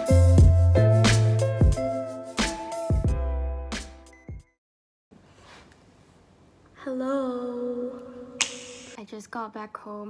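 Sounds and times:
sharp snap: 8.4 - 9.0.

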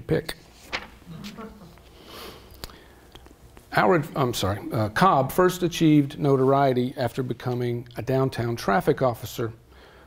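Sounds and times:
man sniffing: 1.8 - 3.0.

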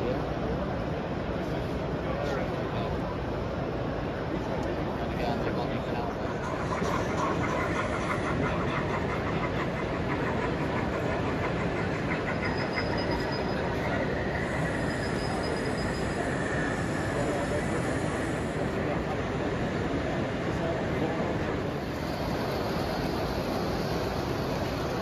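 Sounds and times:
model train running on track: 0.0 - 25.0
crowd hubbub: 4.2 - 25.0
rhythmic clicking: 6.3 - 16.7.

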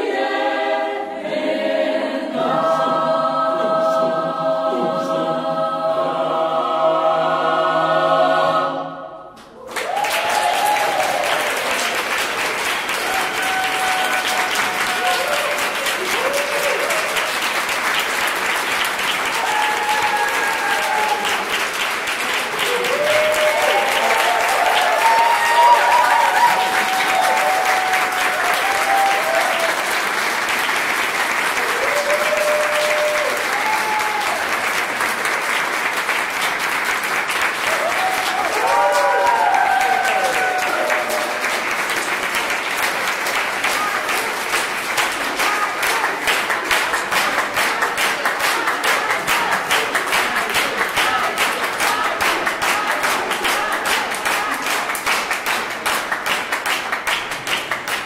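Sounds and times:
choir holding a chord: 0.0 - 9.4
audience cheering: 9.5 - 18.0, 19.0 - 35.2, 37.5 - 44.5
audience applauding: 9.5 - 58.0.

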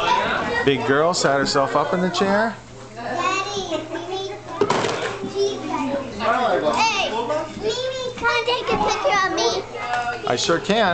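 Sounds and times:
children chattering and playing: 0.0 - 10.8
child's high-pitched voice: 7.6 - 9.7.

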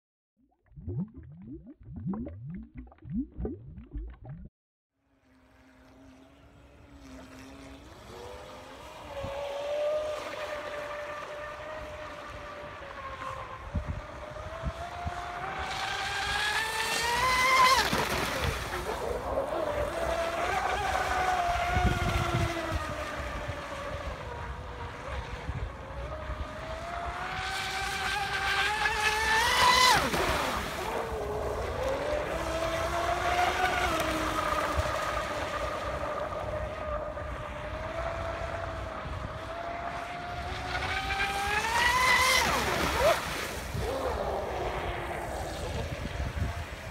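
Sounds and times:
electric boat motor whining: 5.2 - 45.4.

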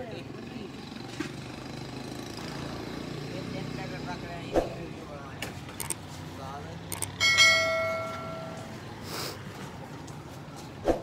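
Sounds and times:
bright bell ding: 7.2 - 8.7.

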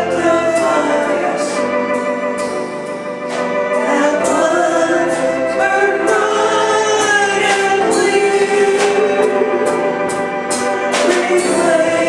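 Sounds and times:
keyboard accompaniment: 0.0 - 12.0
people singing a gospel hymn: 0.0 - 12.0.

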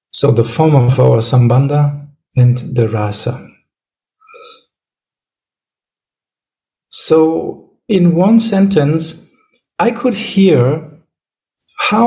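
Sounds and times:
throaty vocal sound: 4.3 - 4.6.

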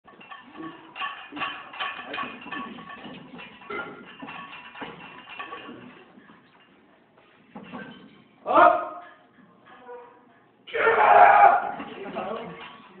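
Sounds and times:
barbell plates clanking: 0.1 - 6.8, 7.5 - 10.2, 10.8 - 13.0.

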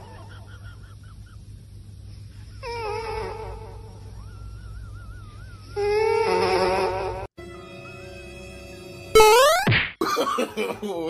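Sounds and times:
quiet steady hum: 0.0 - 7.3.

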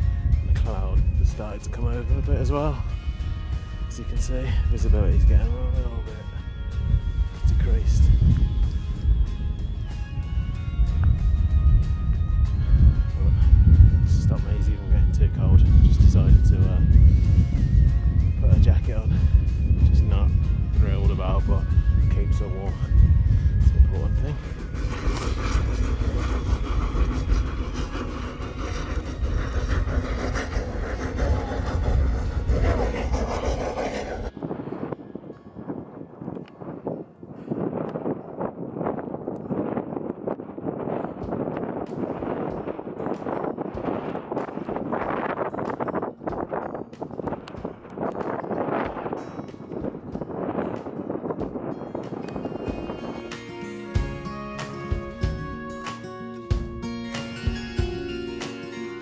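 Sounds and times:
wind buffeting microphone: 0.0 - 55.8
guitar music: 51.5 - 59.0.

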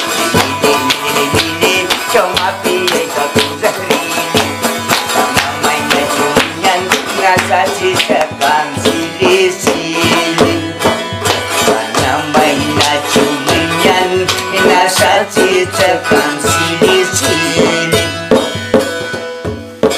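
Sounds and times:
hand-struck frame drum beat: 0.0 - 19.9
plucked lute melody: 0.0 - 19.9.

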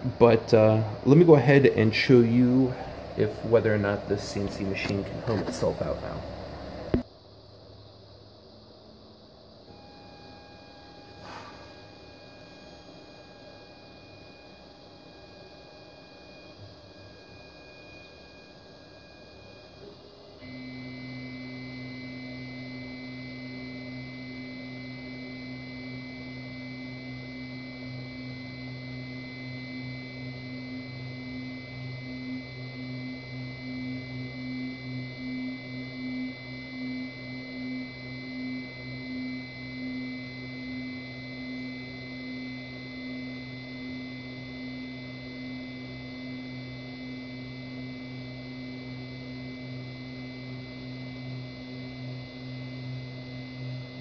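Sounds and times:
stepper motors whining: 9.7 - 54.0.

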